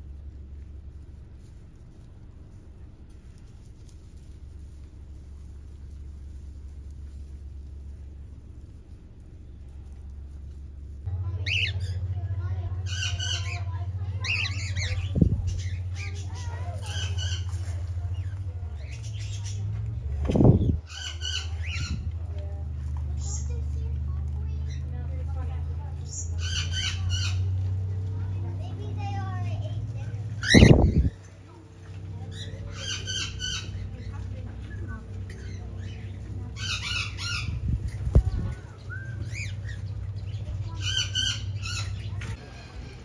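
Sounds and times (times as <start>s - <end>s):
steady low hum: 0.0s - 43.0s
steady low rumble: 0.0s - 43.0s
bird squawking: 12.8s - 19.6s, 26.1s - 27.5s, 30.4s - 31.2s, 32.3s - 43.0s.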